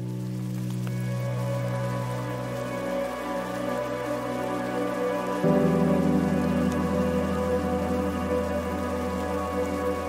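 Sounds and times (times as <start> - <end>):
mellow background music: 0.0 - 10.0
rain-like hiss: 0.0 - 10.0.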